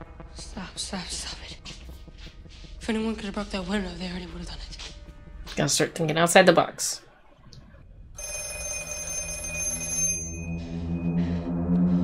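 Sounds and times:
telephone bell ringing: 8.2s - 11.0s.

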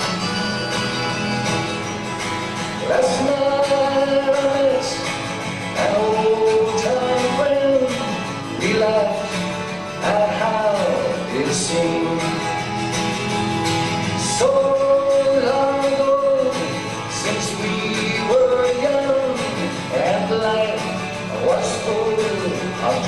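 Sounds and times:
strummed acoustic guitar: 0.0s - 23.0s
man singing a folk song: 2.6s - 23.0s.

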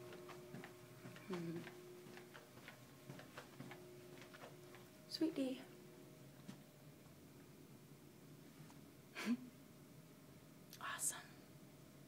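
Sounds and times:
footsteps walking briskly: 0.0s - 5.0s
steady low hum: 0.0s - 12.0s.

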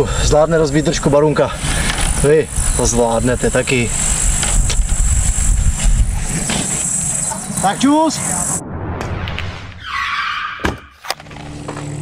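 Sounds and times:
insects chirring: 0.0s - 8.6s
wind buffeting microphone: 1.6s - 6.5s.

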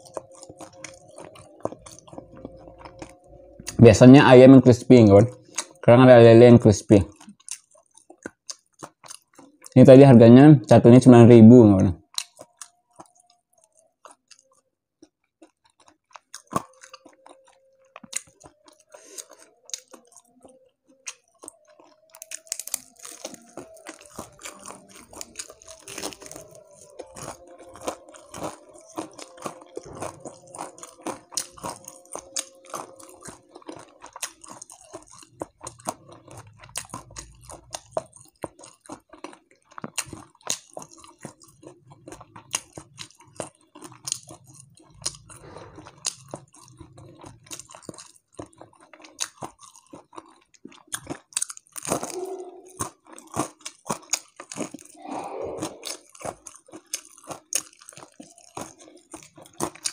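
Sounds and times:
chewing and crunching fried fish: 0.0s - 59.9s
crisp coating crackling: 18.0s - 38.8s.

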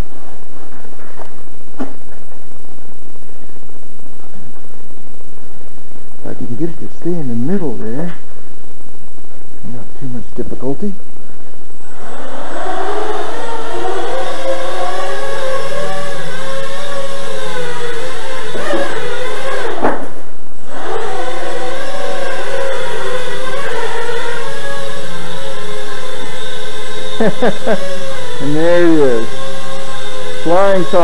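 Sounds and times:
quadcopter motors whining: 11.8s - 31.0s.

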